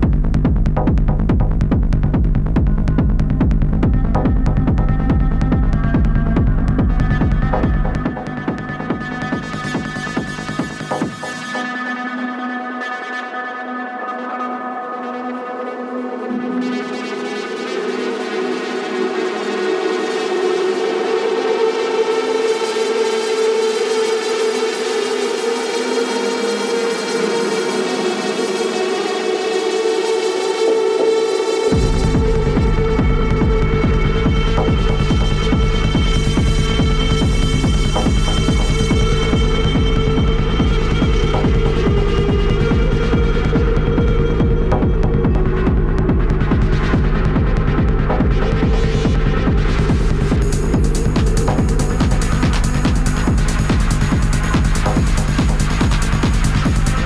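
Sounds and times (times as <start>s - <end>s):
techno kick drum: 0.0s - 11.6s, 31.7s - 57.0s
droning synthesizer chord: 2.7s - 57.0s.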